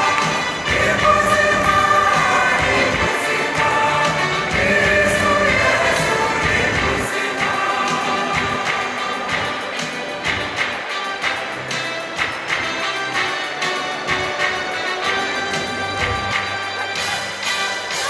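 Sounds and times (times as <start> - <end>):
mixed choir singing gospel: 0.0 - 18.0.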